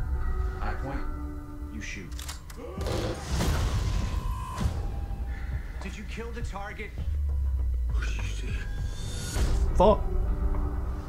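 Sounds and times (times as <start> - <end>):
sharp gunshots: 2.8 - 4.8
loud explosion: 2.8 - 5.2.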